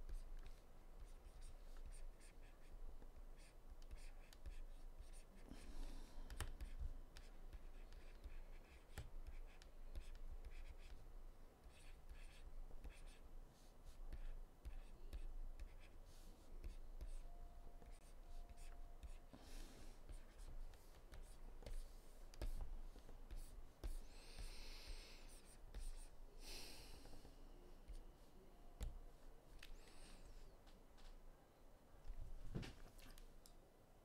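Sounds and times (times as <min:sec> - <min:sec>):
low steady hum: 0:00.0 - 0:34.0.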